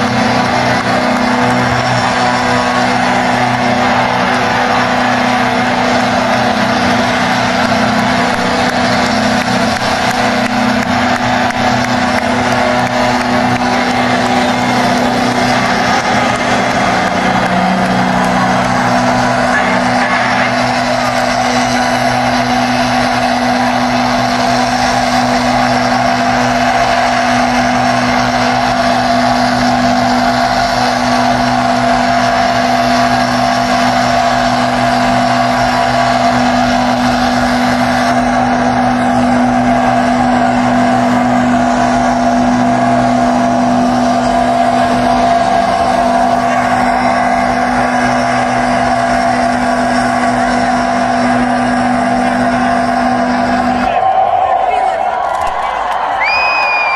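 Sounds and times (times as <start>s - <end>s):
rock band drone: 0.0s - 56.9s.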